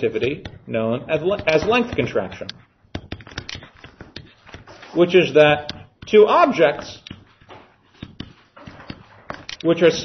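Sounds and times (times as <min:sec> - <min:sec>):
faint room noise: 0:00.0 - 0:10.0
stylus tapping on screen: 0:00.1 - 0:04.7, 0:05.5 - 0:09.7.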